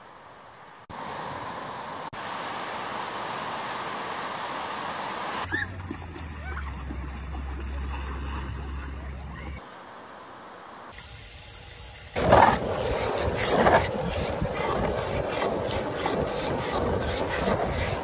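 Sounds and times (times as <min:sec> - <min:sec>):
skateboard wheels rolling on asphalt: 0:10.9 - 0:18.0.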